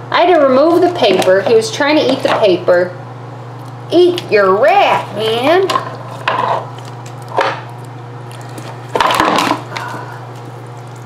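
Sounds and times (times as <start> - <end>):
steady low hum: 0.0 - 11.0
lizard crunching and scraping food: 5.0 - 11.0.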